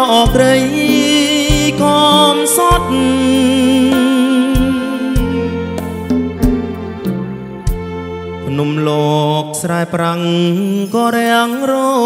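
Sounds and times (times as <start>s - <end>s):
man singing ballad: 0.0s - 6.1s, 8.4s - 12.0s
live band playing: 0.0s - 9.4s.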